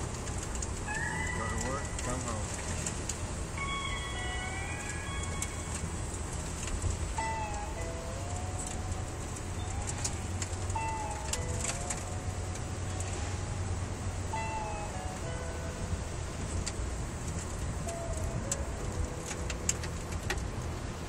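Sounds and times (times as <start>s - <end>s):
car cabin road rumble: 0.0s - 21.0s
slow wavering melody: 0.8s - 21.0s.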